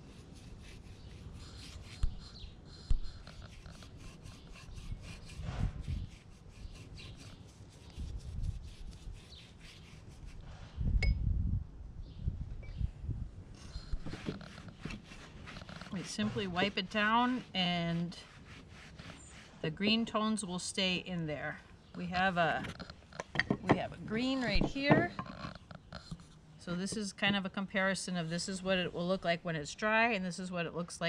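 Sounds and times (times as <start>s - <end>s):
paintbrush scrubbing on wood: 0.0s - 10.4s, 13.8s - 19.9s.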